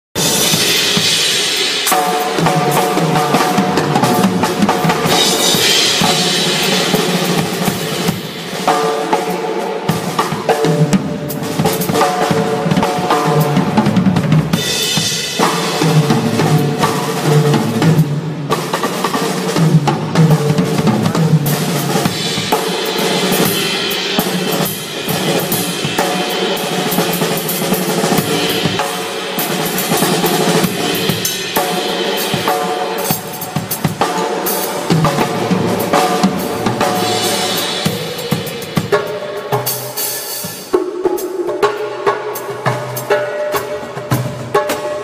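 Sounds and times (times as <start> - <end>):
cymbals: 0.2 - 45.0
drum kit solo: 0.2 - 45.0.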